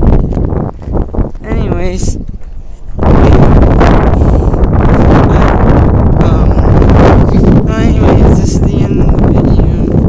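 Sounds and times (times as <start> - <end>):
strong wind on microphone: 0.0 - 10.0.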